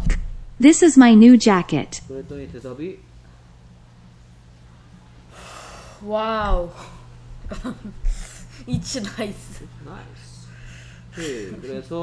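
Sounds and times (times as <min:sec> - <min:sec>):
faint low hum: 0:00.0 - 0:12.0
sharp intake of breath: 0:05.3 - 0:06.0.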